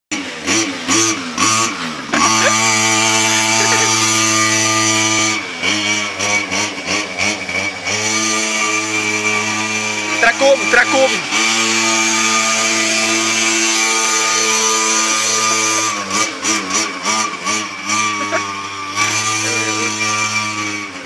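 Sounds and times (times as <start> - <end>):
two-stroke engine revving: 0.1 - 21.0.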